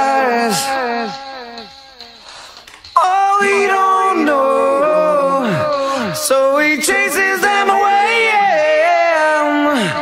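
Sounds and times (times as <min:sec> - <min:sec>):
lower vocal line: 0:03.0 - 0:10.0
man singing rock vocals: 0:03.0 - 0:10.0.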